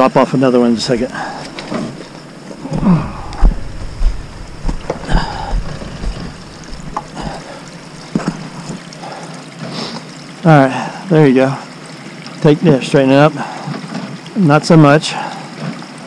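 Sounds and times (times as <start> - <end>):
footsteps on gravel: 1.5 - 8.8
wind buffeting microphone: 2.6 - 8.5.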